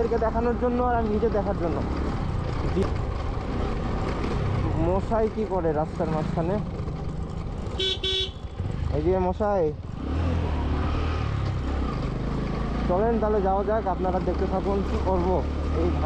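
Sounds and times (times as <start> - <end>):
motorcycle engine running: 0.0 - 16.0
motorcycle horn beeping: 7.7 - 8.6.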